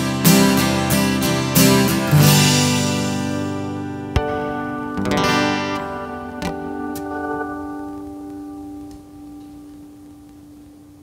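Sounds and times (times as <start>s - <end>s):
acoustic guitar chord ringing: 0.0s - 10.3s.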